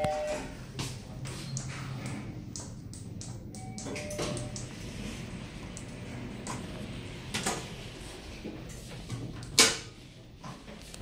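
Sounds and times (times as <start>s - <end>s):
elevator doors closing: 0.0s - 10.1s.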